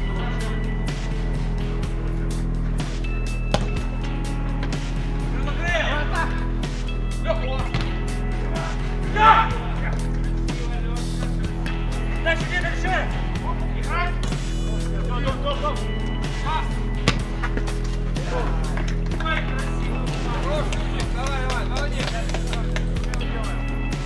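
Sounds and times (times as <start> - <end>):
ball kicks: 3.5 - 3.8, 17.0 - 17.6
players shouting: 8.6 - 9.9, 18.1 - 22.8.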